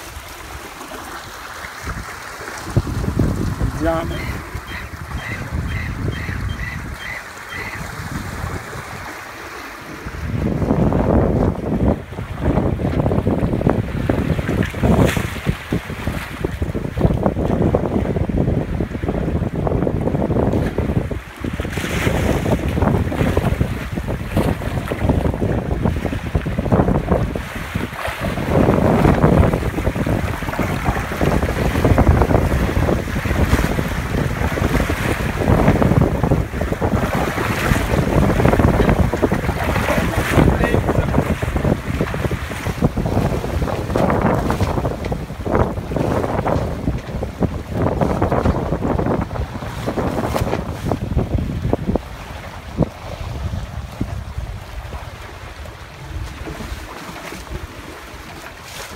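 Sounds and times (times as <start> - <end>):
water rushing along hulls: 0.0 - 58.9
wind buffeting microphone: 1.7 - 58.9.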